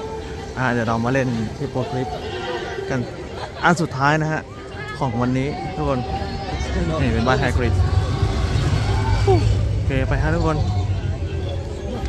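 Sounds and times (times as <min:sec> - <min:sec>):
loud low rumble: 0:06.8 - 0:12.0.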